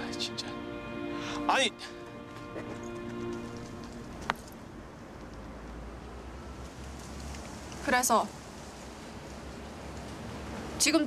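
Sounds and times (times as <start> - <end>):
soft sustained music chord: 0.0 - 5.0.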